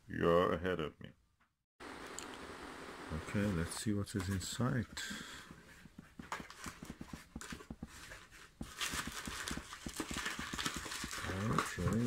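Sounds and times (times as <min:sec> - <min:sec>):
packing paper and bubble wrap crinkling: 0:06.2 - 0:12.0.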